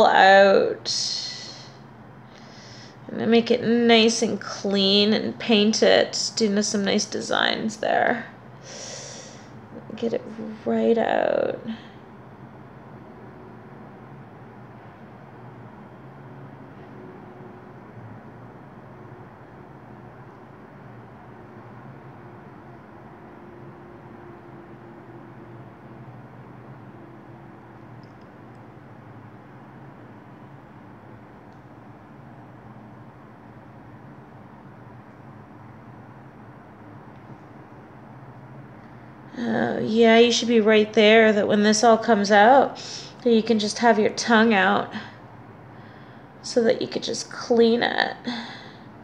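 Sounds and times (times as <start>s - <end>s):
low hum with hiss: 0.0s - 49.0s.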